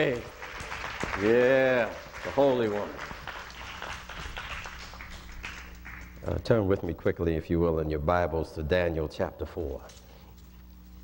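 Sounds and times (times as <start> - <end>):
scattered hand claps: 0.0 - 6.5
low steady hum: 0.0 - 11.0.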